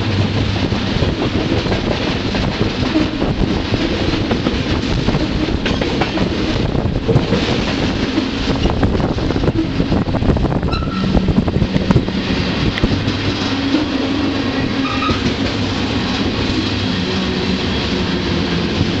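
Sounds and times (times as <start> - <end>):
train wheels rumbling on rail: 0.0 - 19.0.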